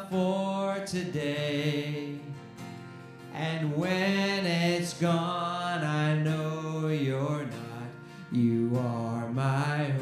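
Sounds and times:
man singing: 0:00.0 - 0:02.6, 0:03.2 - 0:10.0
acoustic guitar: 0:00.0 - 0:10.0.

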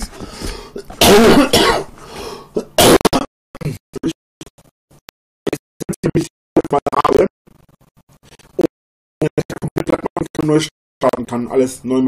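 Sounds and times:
man coughing: 0:00.8 - 0:01.9.

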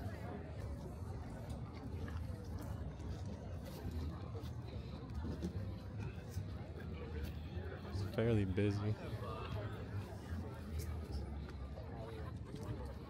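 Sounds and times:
chatter of shoppers: 0:00.0 - 0:13.0.

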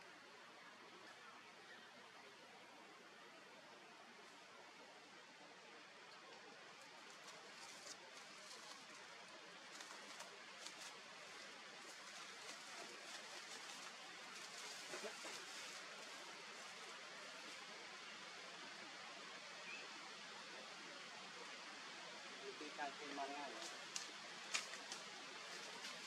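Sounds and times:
faint outdoor hiss: 0:00.0 - 0:26.0
faint high-pitched ticks: 0:23.6 - 0:25.1.

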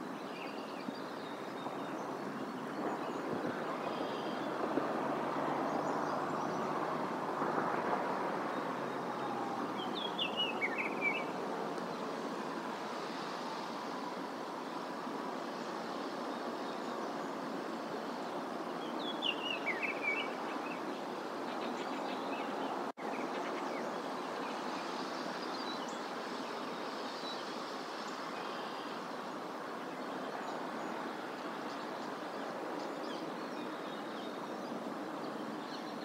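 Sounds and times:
songbird chirping: 0:07.6 - 0:14.2, 0:15.5 - 0:29.1.

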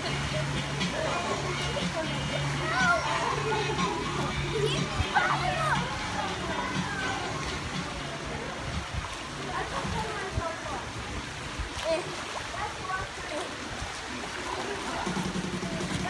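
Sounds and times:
background voices: 0:00.0 - 0:08.7
music with steady bass line: 0:00.0 - 0:09.0, 0:15.0 - 0:16.0
water lapping: 0:00.0 - 0:16.0.

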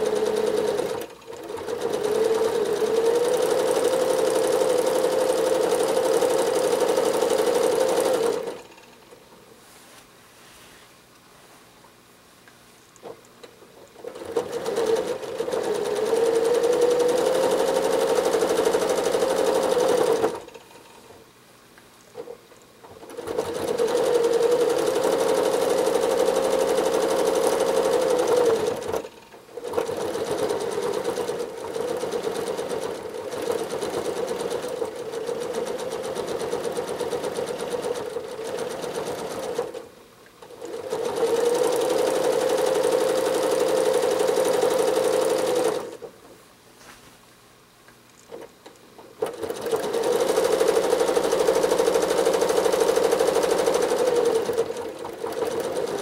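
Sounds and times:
sewing machine stitching: 0:00.0 - 0:09.1, 0:13.0 - 0:21.0, 0:22.2 - 0:46.3, 0:48.3 - 0:56.0.

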